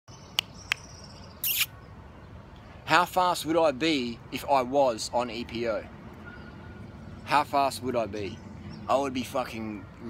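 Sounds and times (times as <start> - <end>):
sharp high chirps: 1.4 - 1.7
high rasping call: 1.4 - 1.8.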